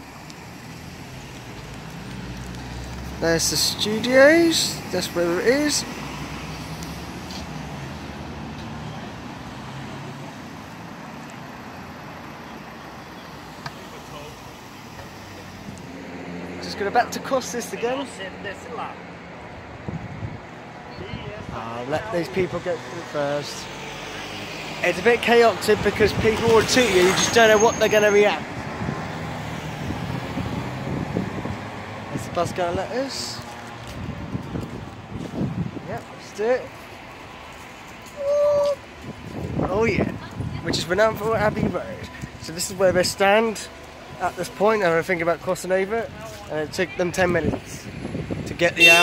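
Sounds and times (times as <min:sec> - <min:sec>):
road noise hum: 0:00.0 - 0:49.0.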